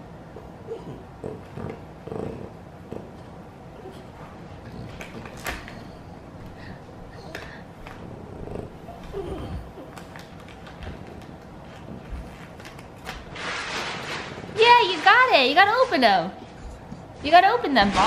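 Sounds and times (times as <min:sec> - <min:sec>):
dog snuffling: 0:00.7 - 0:17.2
wrapping paper crinkling: 0:09.8 - 0:15.4.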